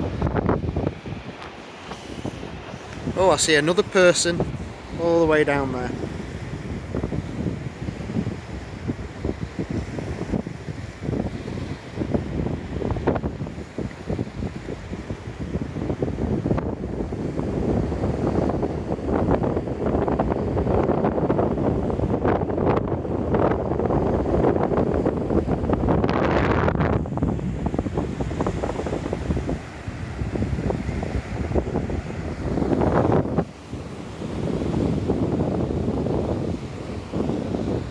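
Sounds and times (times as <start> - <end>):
waves breaking on shore: 0.0 - 37.9
wind gusting across microphone: 0.0 - 37.9.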